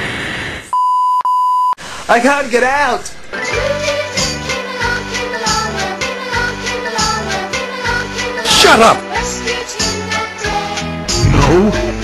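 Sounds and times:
censor bleep tone: 0.7s - 1.8s
brief rushing noise: 11.1s - 12.0s.

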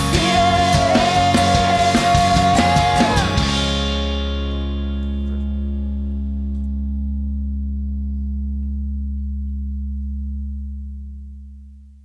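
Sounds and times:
electric guitar chord ringing out: 0.0s - 9.8s.

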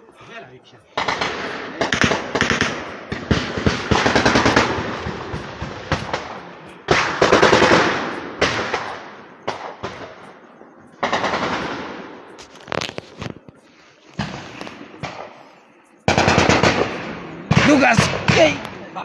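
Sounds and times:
rapid gunfire volleys: 1.0s - 10.4s, 11.0s - 12.3s, 16.1s - 18.8s
single gunshots: 1.0s - 10.4s, 11.0s - 12.2s, 16.1s - 18.8s.

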